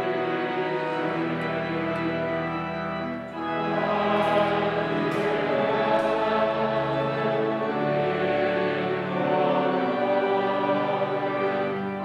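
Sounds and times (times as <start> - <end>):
choir singing a hymn: 0.0 - 12.0
church organ chords: 0.0 - 12.0.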